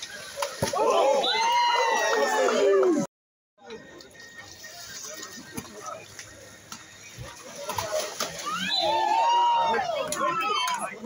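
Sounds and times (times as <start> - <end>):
water splashing: 0.0 - 2.1, 4.1 - 11.0
people shouting: 0.4 - 3.0, 8.0 - 11.0.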